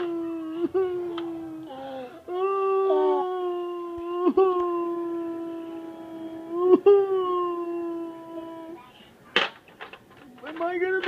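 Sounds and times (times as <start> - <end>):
person wailing moans: 0.0 - 8.8.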